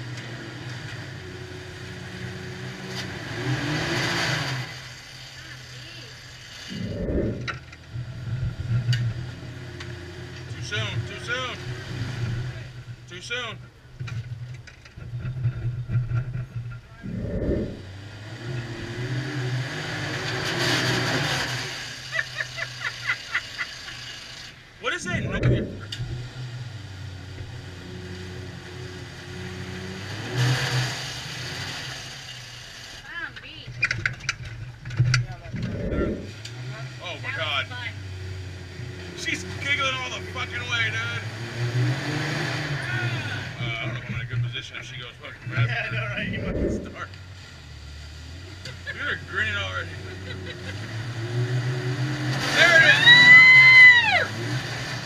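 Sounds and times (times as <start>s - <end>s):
off-road vehicle engine revving: 0.0s - 55.0s
dull low thumps: 6.7s - 9.2s, 15.0s - 18.0s, 25.0s - 26.4s, 35.2s - 36.4s, 45.9s - 47.0s
indistinct voices: 16.8s - 17.9s, 24.8s - 26.2s, 35.1s - 38.0s, 42.8s - 47.2s.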